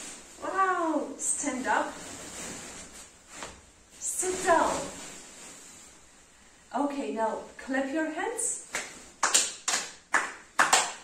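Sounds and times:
bean bag chairs rustling: 0:00.0 - 0:06.2.

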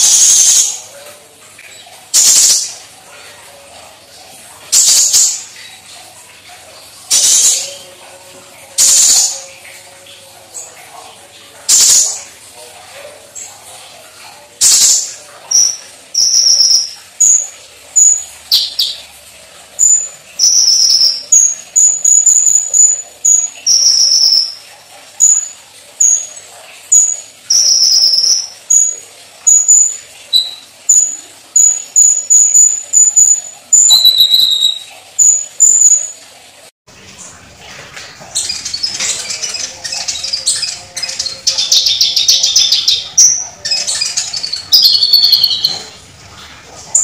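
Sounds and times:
sunbird singing: 0:15.5 - 0:19.0, 0:19.8 - 0:24.6, 0:26.9 - 0:36.1, 0:38.3 - 0:46.0.

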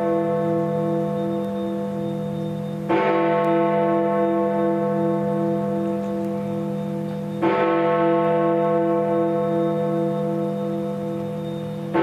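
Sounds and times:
large bell striking: 0:00.0 - 0:12.0.

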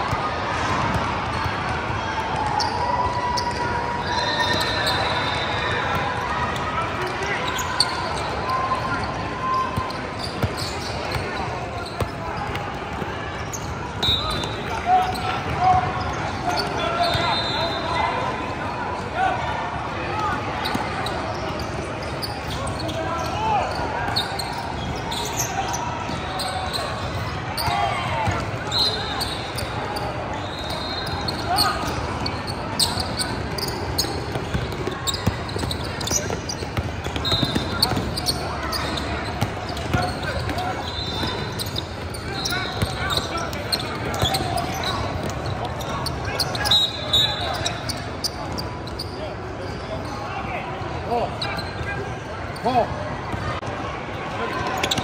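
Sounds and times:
indistinct chatter in echoing hall: 0:00.0 - 0:55.0
sneakers squeaking on court: 0:03.4 - 0:18.0, 0:20.3 - 0:50.3, 0:51.3 - 0:53.7, 0:54.5 - 0:55.0.

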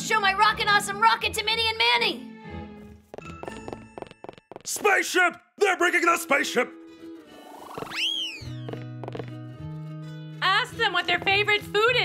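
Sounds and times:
rising and falling whistle effect: 0:07.6 - 0:08.8.

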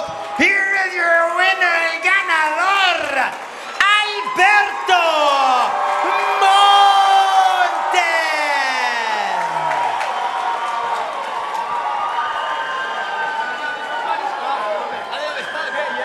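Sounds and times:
crowd cheering: 0:00.0 - 0:16.0.

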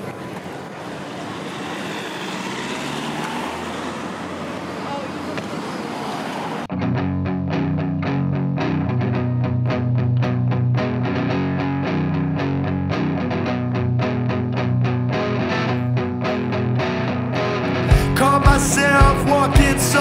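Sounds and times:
rushing background noise: 0:00.0 - 0:06.7
bass guitar: 0:06.7 - 0:20.0
distorted electric guitar: 0:06.7 - 0:20.0
drums beating: 0:17.9 - 0:19.9.

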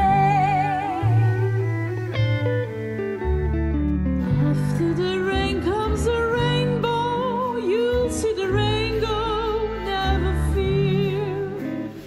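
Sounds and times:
small ensemble playing slow song: 0:00.0 - 0:12.0.

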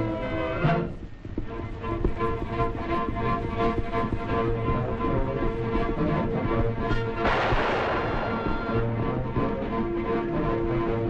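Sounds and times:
film music: 0:00.0 - 0:11.0
gunshot: 0:07.2 - 0:08.8.

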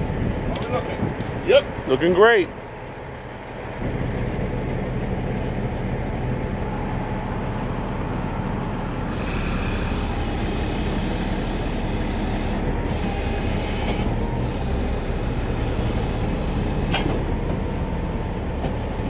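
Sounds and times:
diesel truck engine rumbling: 0:00.0 - 0:19.0.

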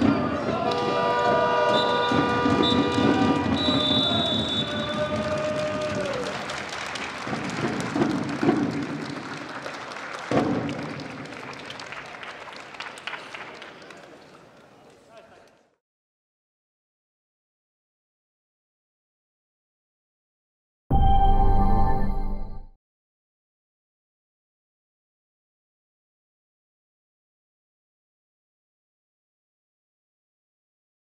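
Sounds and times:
arena crowd applause: 0:00.0 - 0:15.7
short high whistle blasts: 0:01.6 - 0:05.1.

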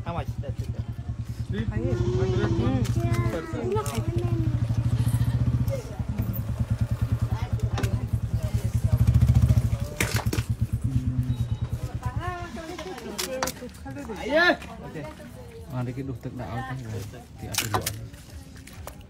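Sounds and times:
small engine idling: 0:00.0 - 0:13.3
voices speaking: 0:00.0 - 0:19.0.

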